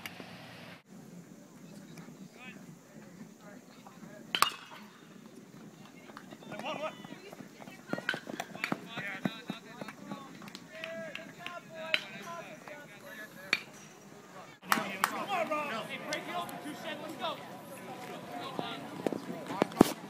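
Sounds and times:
bat hitting ball crack: 0:04.3 - 0:04.9.

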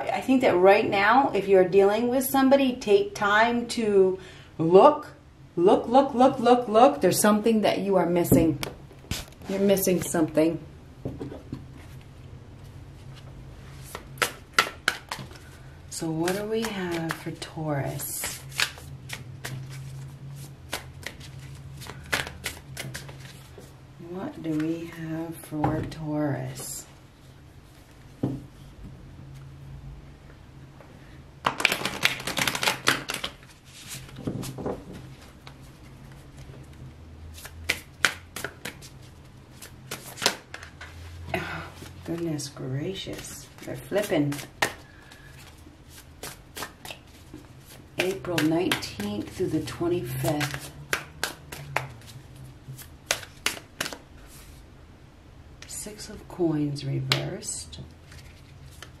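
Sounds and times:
cards being shuffled by hand: 0:13.0 - 0:15.6, 0:16.2 - 0:23.8, 0:31.4 - 0:41.2, 0:43.0 - 0:54.6, 0:58.0 - 0:59.0
crisp snaps of cards: 0:31.5 - 0:33.5, 0:50.3 - 0:52.1, 0:52.8 - 0:54.0.

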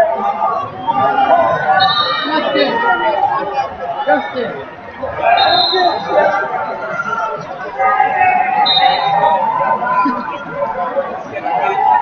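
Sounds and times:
crowd talking in hall: 0:00.0 - 0:12.0.

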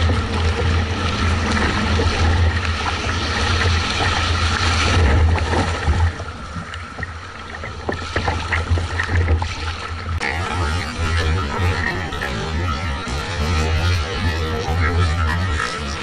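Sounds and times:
water rushing around hull: 0:00.0 - 0:16.0
low steady rumble: 0:10.2 - 0:16.0.

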